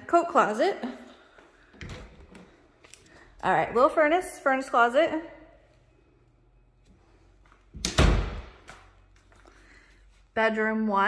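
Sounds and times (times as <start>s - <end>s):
door thudding shut: 7.8s - 8.6s.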